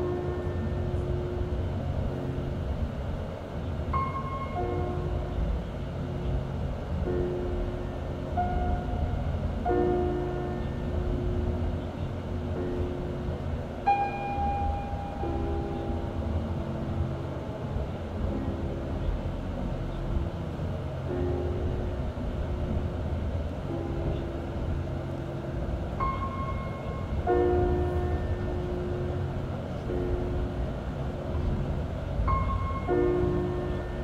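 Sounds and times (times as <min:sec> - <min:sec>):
slow calm background music: 0:07.1 - 0:19.3.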